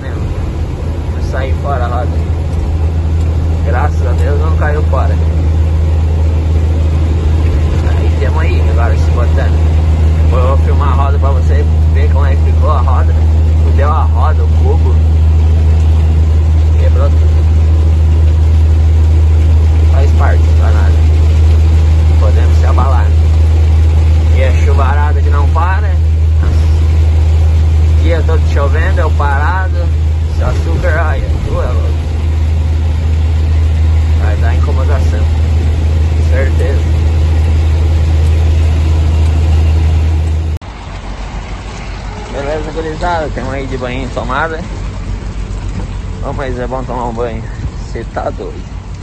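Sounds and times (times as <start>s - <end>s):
truck engine drone: 0.0s - 49.0s
voices: 0.0s - 49.0s.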